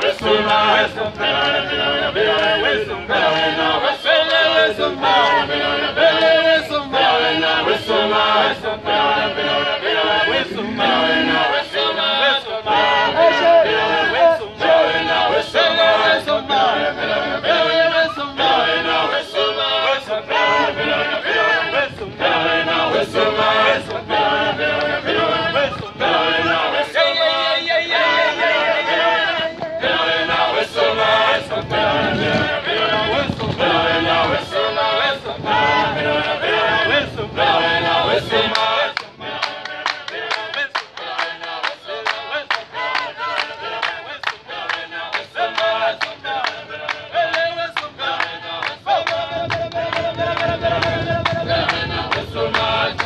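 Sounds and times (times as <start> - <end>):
hands clapping steady beat: 0.0 - 2.6, 4.2 - 4.5, 6.1 - 6.4, 24.7 - 25.0, 37.8 - 53.0
men chanting in chorus: 0.0 - 53.0.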